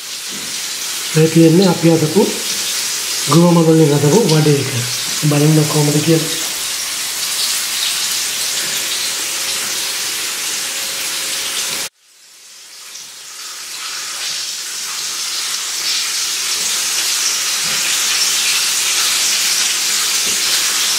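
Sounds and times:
hot oil sizzling: 0.0s - 20.9s.

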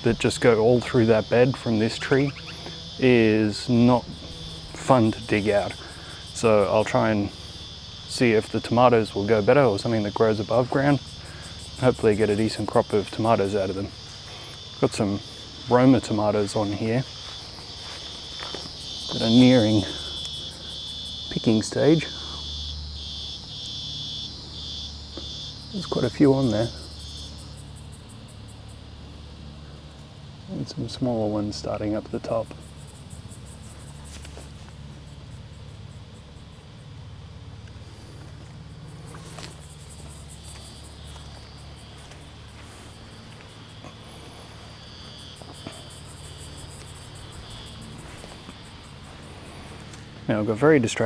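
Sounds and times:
insect trilling: 0.0s - 51.0s.

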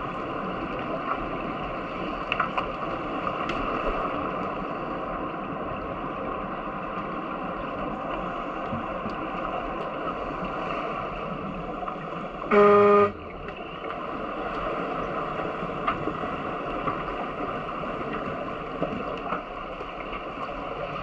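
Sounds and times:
underwater horn buzzing: 12.5s - 13.3s.

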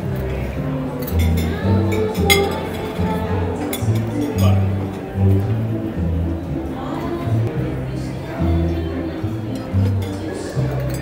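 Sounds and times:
jazz with bass line: 0.0s - 11.0s
metal pans and utensils clinking: 1.0s - 5.1s.

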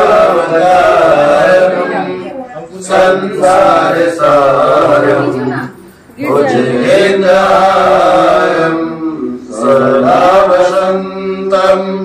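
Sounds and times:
person chanting a mantra: 6.2s - 12.0s.

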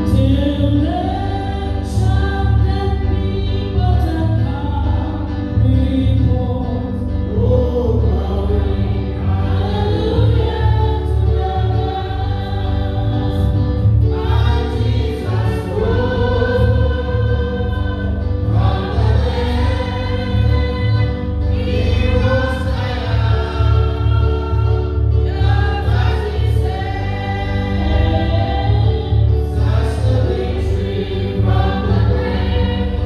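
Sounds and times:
choir singing a gospel hymn: 0.0s - 33.0s
pulsing bass: 0.0s - 33.0s.

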